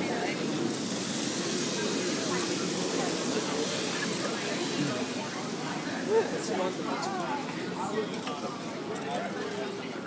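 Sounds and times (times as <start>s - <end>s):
continuous hiss: 0.0s - 10.0s
crowd babble: 0.0s - 10.0s.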